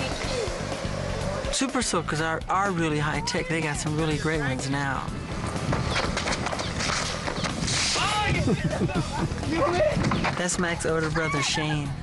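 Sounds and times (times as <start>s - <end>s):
people running on pavement: 5.3s - 11.4s.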